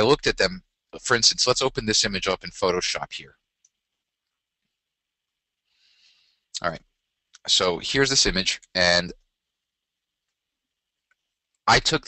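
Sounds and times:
man's voice: 0:00.0 - 0:03.3, 0:07.5 - 0:09.1, 0:11.7 - 0:12.0
faint steady high hiss: 0:00.0 - 0:12.0.

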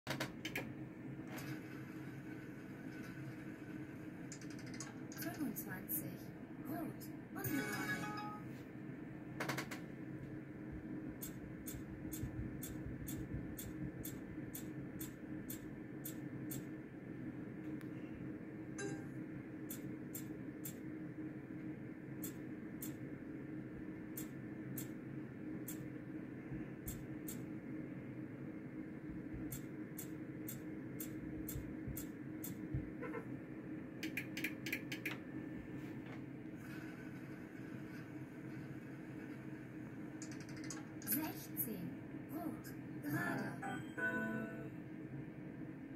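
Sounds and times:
low machine hum: 0:00.1 - 0:45.9.

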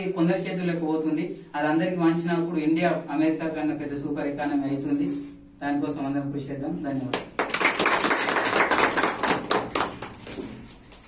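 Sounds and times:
audience applauding: 0:07.3 - 0:10.3.

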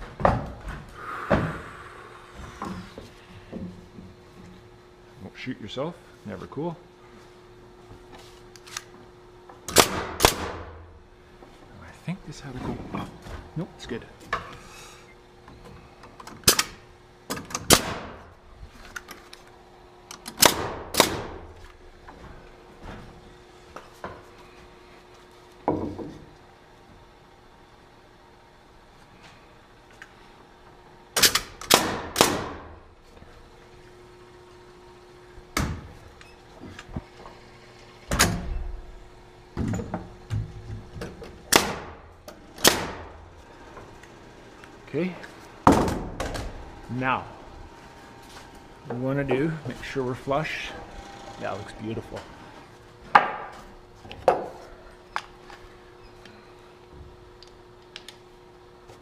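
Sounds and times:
nail gun firing bangs: 0:09.7 - 0:10.8, 0:16.4 - 0:18.2, 0:20.3 - 0:21.5, 0:31.2 - 0:32.8, 0:41.5 - 0:42.0, 0:42.6 - 0:43.2.

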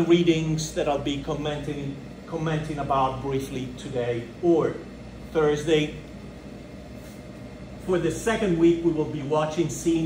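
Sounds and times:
man speaking: 0:00.0 - 0:06.1, 0:07.8 - 0:10.0
low background hum: 0:00.0 - 0:10.0.

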